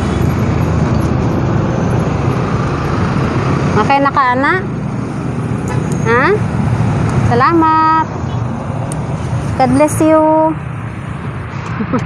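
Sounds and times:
low rumble of road traffic: 0.0s - 12.0s.

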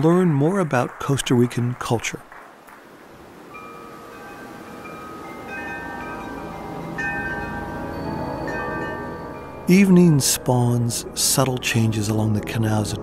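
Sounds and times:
chime music: 3.4s - 12.0s.

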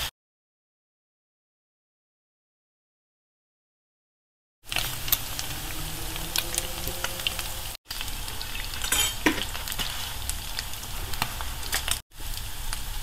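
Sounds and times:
meat sizzling in a frying pan: 4.7s - 13.0s.

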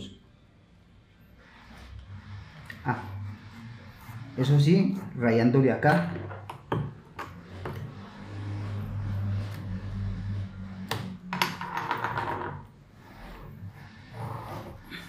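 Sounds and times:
pencil scratching on paper: 1.3s - 5.7s, 12.8s - 15.0s.

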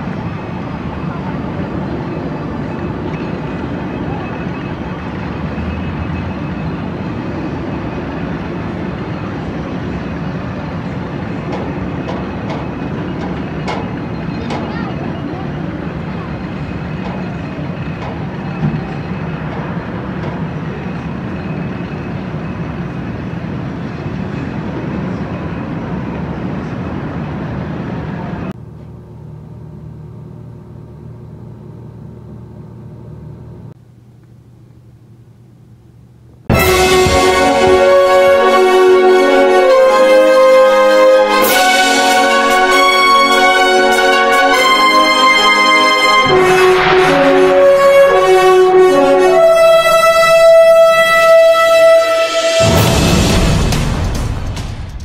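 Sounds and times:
indistinct voices: 0.0s - 22.9s
steady rushing outdoor noise: 0.0s - 28.6s.

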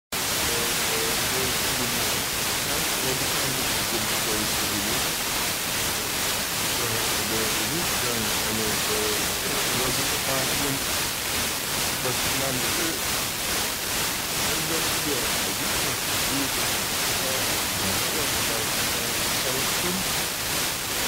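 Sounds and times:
radio static hiss: 0.1s - 21.0s
faint radio voice speaking: 0.5s - 2.1s, 2.7s - 5.0s, 6.8s - 10.9s, 12.0s - 13.0s, 14.4s - 20.1s.

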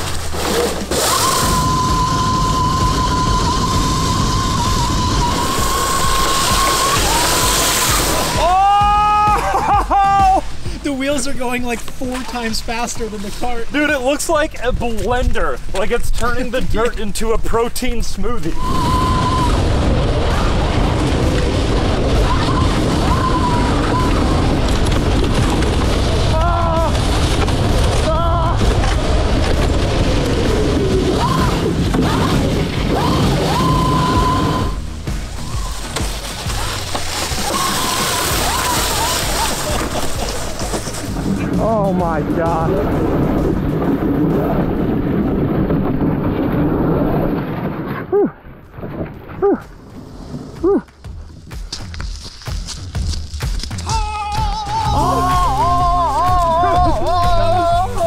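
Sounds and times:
dirt spraying: 0.0s - 16.6s, 18.5s - 47.8s, 49.1s - 58.0s
wind rumble: 0.0s - 58.0s.

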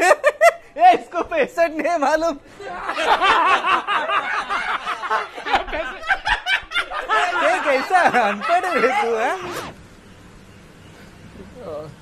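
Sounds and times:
snickering laughter: 2.7s - 9.5s
people talking: 7.0s - 9.7s, 11.4s - 12.0s.

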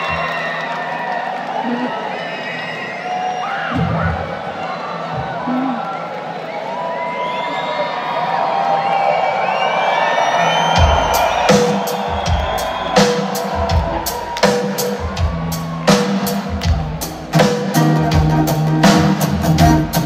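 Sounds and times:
crowd cheering and whistling: 0.0s - 20.0s
rock band playing: 10.4s - 20.0s.

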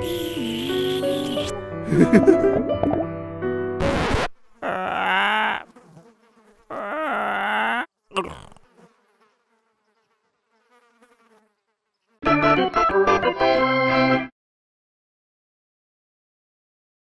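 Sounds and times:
cartoon flies buzzing: 0.0s - 1.6s, 3.8s - 12.2s.

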